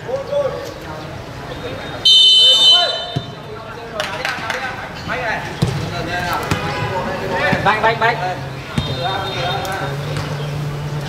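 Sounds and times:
players shouting: 0:01.8 - 0:03.7
referee's whistle blast: 0:02.0 - 0:03.4
ball being kicked: 0:03.0 - 0:03.4.

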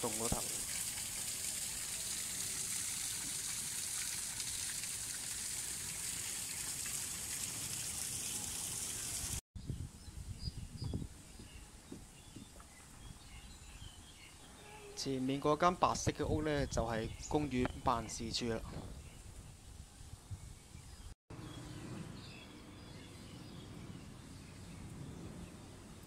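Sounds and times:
waterfall splashing into pond: 0:00.0 - 0:09.4
birds chirping: 0:09.6 - 0:19.8.

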